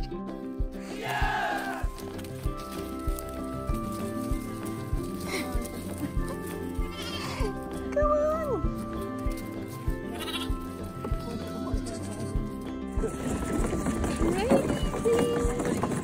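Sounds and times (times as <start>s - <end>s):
background music: 0.0s - 16.0s
lambs bleating: 6.8s - 7.6s, 10.0s - 13.4s.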